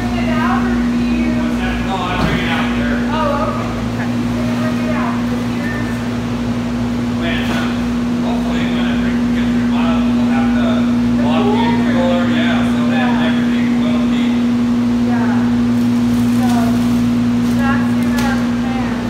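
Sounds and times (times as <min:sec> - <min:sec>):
faint voices talking: 0:00.0 - 0:06.2, 0:07.1 - 0:15.7
refrigeration equipment humming: 0:00.0 - 0:19.0.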